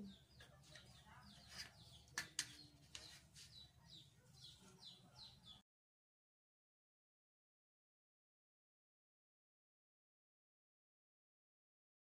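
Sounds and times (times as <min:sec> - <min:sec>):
small birds chirping: 0:00.0 - 0:05.6.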